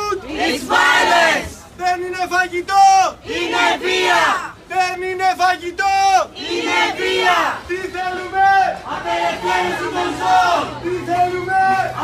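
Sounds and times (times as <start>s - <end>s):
crowd chanting in unison: 0.2s - 1.7s, 3.2s - 4.6s, 6.2s - 12.0s.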